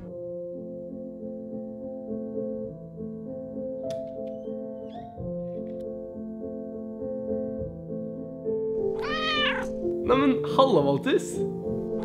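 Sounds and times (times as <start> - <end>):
background piano music: 0.0 - 12.0
cat meowing: 8.9 - 9.8.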